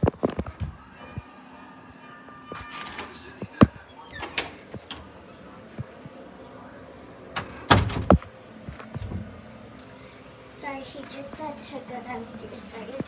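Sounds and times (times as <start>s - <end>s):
knocks and rustles: 7.4s - 9.3s.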